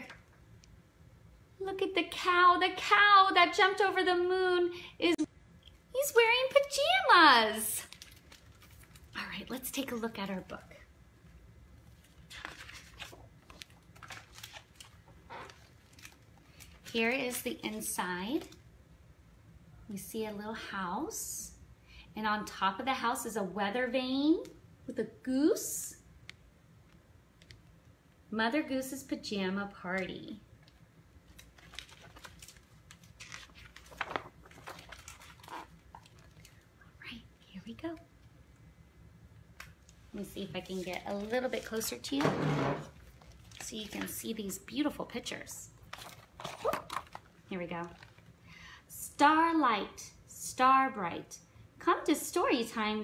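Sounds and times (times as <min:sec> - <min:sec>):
book pages rustling and turning: 0:11.8 - 0:17.8, 0:31.2 - 0:36.6, 0:40.2 - 0:42.2, 0:42.8 - 0:44.6, 0:45.8 - 0:48.3.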